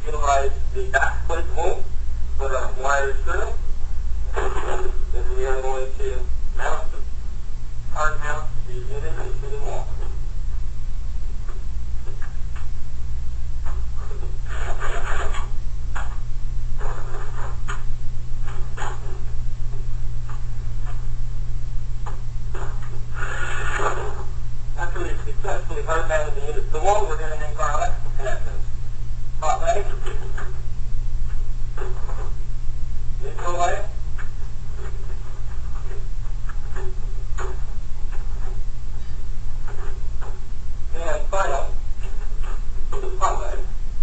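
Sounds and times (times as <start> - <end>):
man speaking: 0.0 - 3.6, 4.4 - 7.1, 7.9 - 10.2, 14.0 - 15.5, 24.8 - 28.6, 29.4 - 30.4, 33.2 - 34.0, 40.9 - 41.8, 42.9 - 43.7
low electrical hum: 0.0 - 44.0.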